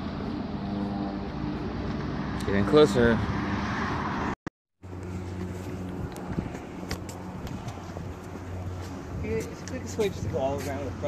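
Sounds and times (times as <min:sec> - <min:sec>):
footsteps on paving: 0:04.9 - 0:11.0.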